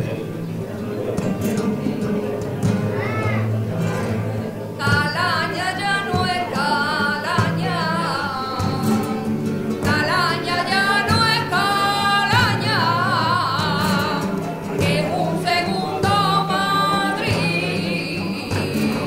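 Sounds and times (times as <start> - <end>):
guitars playing: 0.0 - 19.0
woman singing flamenco: 3.7 - 19.0.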